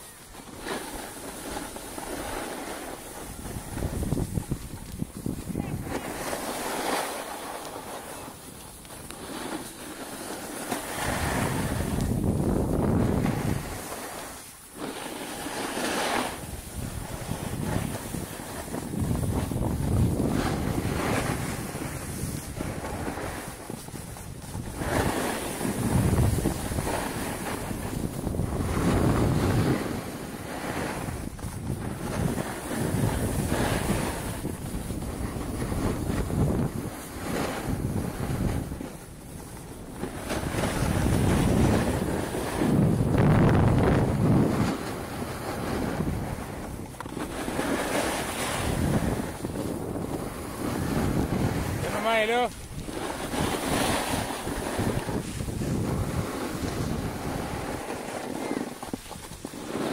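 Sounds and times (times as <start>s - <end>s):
wind buffeting microphone: 0.0s - 59.9s.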